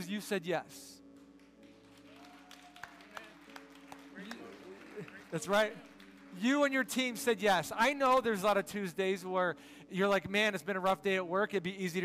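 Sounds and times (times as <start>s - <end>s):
soft background music chords: 0.0s - 12.0s.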